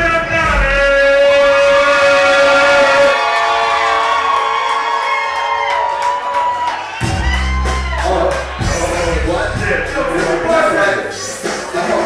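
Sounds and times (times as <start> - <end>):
electronic bass: 7.0 - 12.0.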